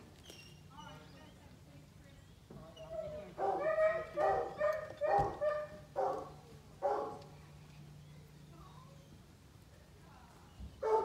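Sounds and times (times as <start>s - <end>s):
dog barking: 3.4s - 7.3s.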